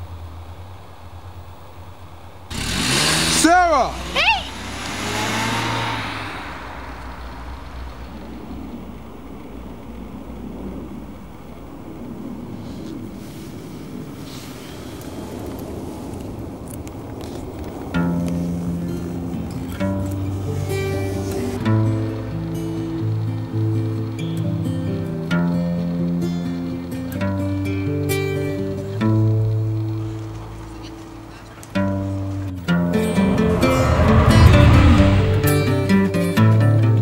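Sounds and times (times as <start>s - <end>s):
car driving off: 0.0s - 37.0s
low steady drone: 3.7s - 37.0s
plucked soundtrack music: 17.7s - 30.7s, 31.8s - 37.0s.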